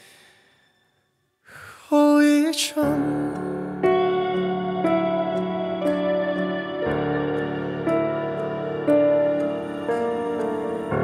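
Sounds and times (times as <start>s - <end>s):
man singing: 1.5s - 3.9s.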